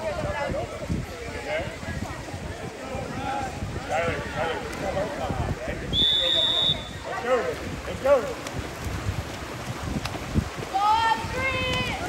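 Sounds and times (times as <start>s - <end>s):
spectators chatting: 0.0s - 8.9s
referee's whistle blast: 5.9s - 7.0s.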